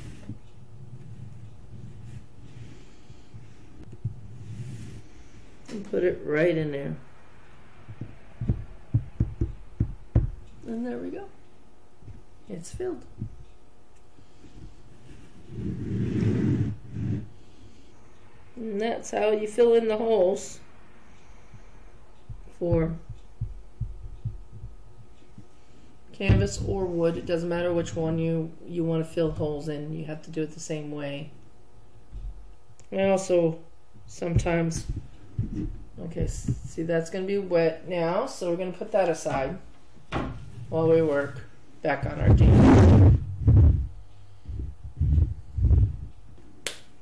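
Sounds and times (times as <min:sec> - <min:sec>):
faint steady hum: 0:00.0 - 0:47.0
soft low handling thumps: 0:07.9 - 0:11.2, 0:12.0 - 0:13.6, 0:22.2 - 0:25.5, 0:26.1 - 0:28.3, 0:34.2 - 0:37.1, 0:39.2 - 0:46.2.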